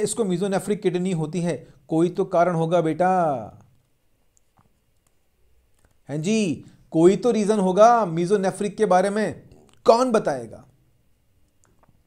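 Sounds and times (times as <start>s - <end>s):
man speaking: 0.0s - 3.7s, 6.0s - 10.7s.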